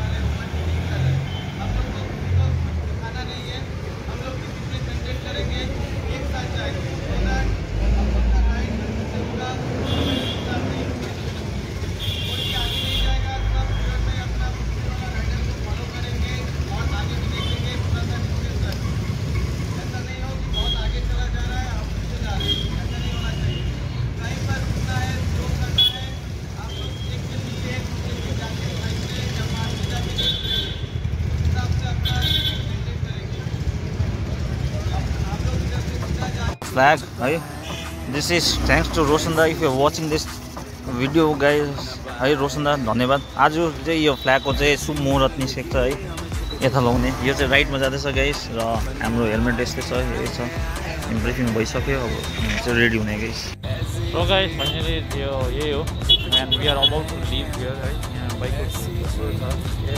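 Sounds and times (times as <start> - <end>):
street traffic: 0.0 - 59.9
motorcycles idling: 1.3 - 59.9.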